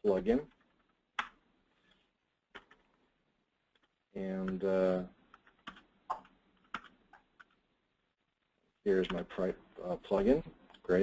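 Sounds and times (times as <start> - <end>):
typing on computer keyboard: 5.3 - 7.6.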